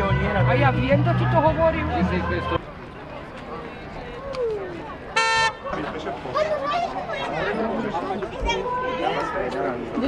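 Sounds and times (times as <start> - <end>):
crowd chatter: 0.0 - 10.0
fire engine horn honk: 5.2 - 5.6.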